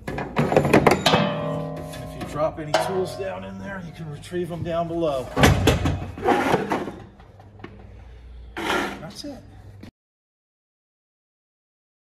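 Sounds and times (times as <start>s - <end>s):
plastic hood clattering shut: 5.4s - 6.9s.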